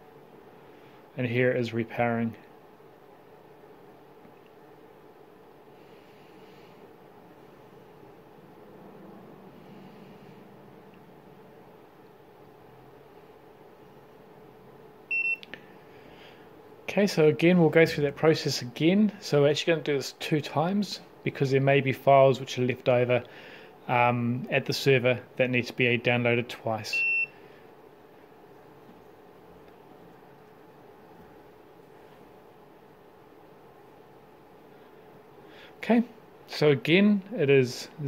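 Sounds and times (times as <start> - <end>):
faint room hum: 0.0 - 38.0.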